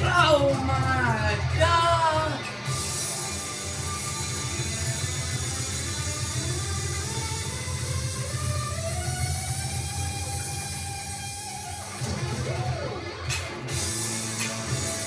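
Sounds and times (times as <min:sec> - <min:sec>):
distorted electric guitar: 0:00.0 - 0:15.0.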